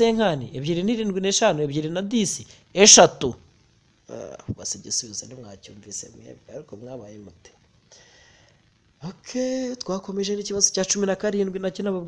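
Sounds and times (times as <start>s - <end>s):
person speaking: 0.0s - 3.4s, 4.1s - 7.5s, 9.0s - 12.0s.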